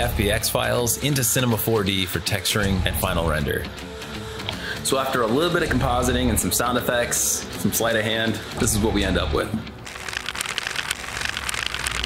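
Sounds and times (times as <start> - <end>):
paper pages riffling: 9.9 - 12.0.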